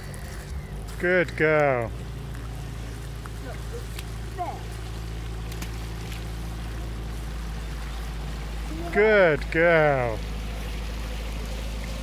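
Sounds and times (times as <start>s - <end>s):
boat engine idling: 0.0s - 12.0s.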